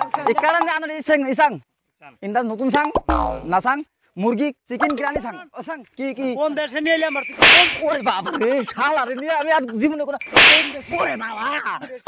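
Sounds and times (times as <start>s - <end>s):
whip-crack hit effects: 7.4s - 7.9s, 10.3s - 10.9s.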